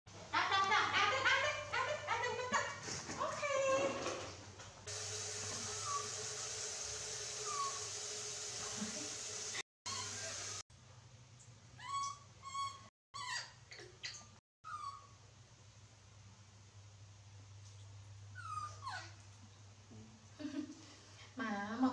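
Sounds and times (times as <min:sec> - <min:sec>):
monkeys squeaky cries: 0:05.6 - 0:06.1, 0:07.4 - 0:07.9, 0:09.9 - 0:10.6, 0:11.8 - 0:13.6
rising whimpering calls: 0:05.6 - 0:06.2, 0:07.4 - 0:08.0, 0:09.9 - 0:10.6
steady hiss over low hum: 0:15.1 - 0:18.5.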